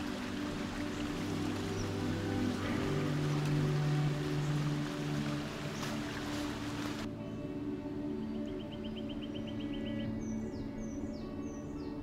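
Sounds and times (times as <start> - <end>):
slow ambient music: 0.0 - 12.0.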